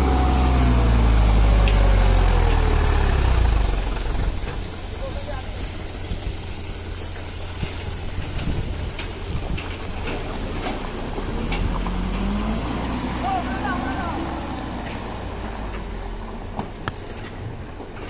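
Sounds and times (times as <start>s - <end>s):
diesel truck engine labouring: 0.0s - 18.0s.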